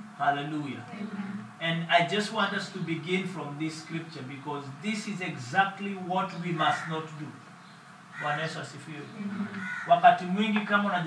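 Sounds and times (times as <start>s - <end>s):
man speaking: 0.2s - 1.0s, 1.6s - 7.4s, 8.2s - 9.2s, 9.9s - 11.0s.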